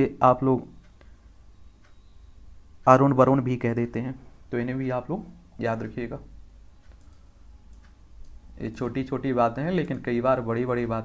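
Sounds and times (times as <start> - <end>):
person speaking: 0.0 - 0.9, 2.8 - 6.4, 8.5 - 11.0
low steady hum: 0.0 - 11.0
computer clicks: 0.6 - 2.6, 5.6 - 11.0.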